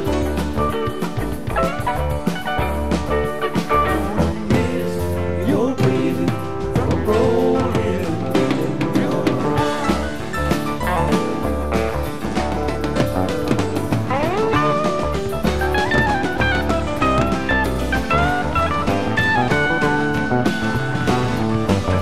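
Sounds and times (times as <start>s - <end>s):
electric lead guitar: 0.0s - 22.0s
rock band playing live: 0.0s - 22.0s.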